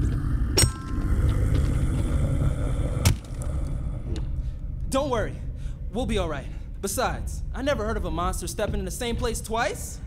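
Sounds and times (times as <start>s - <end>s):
low monster rumble: 0.0s - 6.2s.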